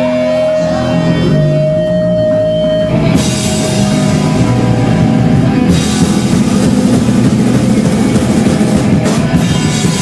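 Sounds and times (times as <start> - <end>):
punk band playing live: 0.0 - 10.0.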